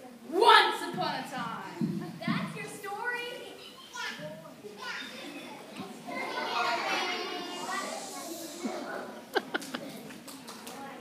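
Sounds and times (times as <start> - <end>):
children talking and calling out: 0.0 - 11.0.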